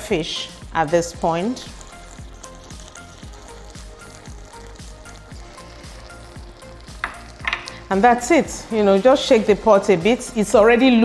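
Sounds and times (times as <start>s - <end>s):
pot sizzling and bubbling: 0.0s - 11.0s.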